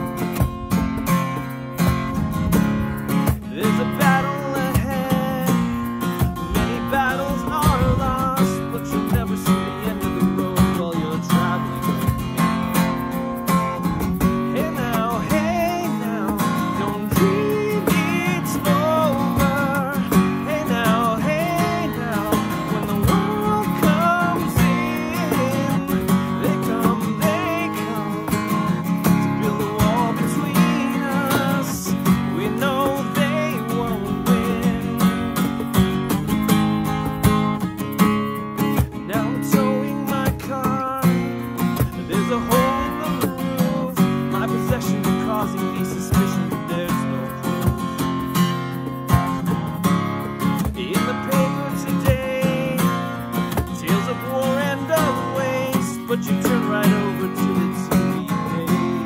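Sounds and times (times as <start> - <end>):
man singing: 0.0 - 36.4, 38.6 - 59.0
acoustic guitar strumming chords: 0.0 - 59.0.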